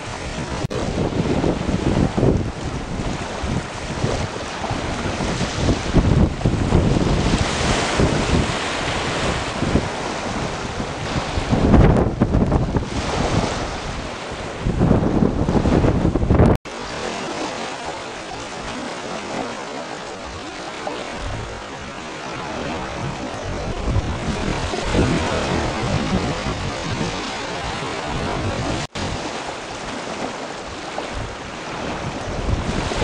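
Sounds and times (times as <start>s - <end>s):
surf breaking on beach: 0.0s - 33.0s
wind buffeting microphone: 0.0s - 33.0s.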